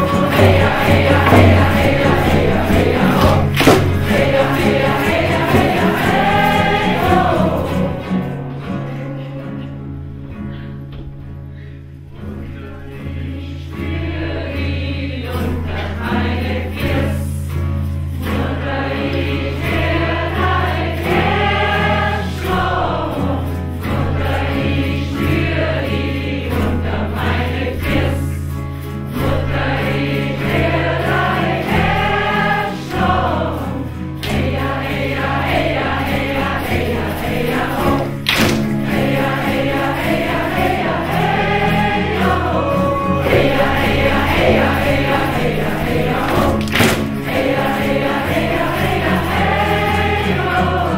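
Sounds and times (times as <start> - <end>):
frame drum beat: 0.0 - 8.0, 34.3 - 50.8
group of voices chanting: 0.0 - 8.1, 29.9 - 50.9.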